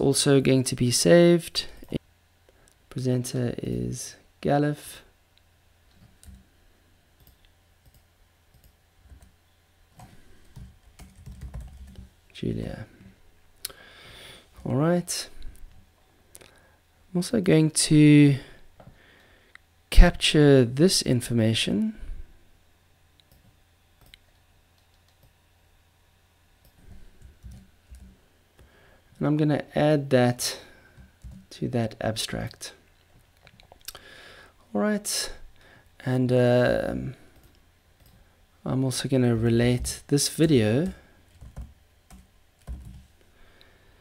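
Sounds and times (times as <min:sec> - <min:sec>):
low steady hum: 0:00.0 - 0:44.0
computer keyboard keystrokes: 0:10.0 - 0:12.1, 0:41.4 - 0:43.0.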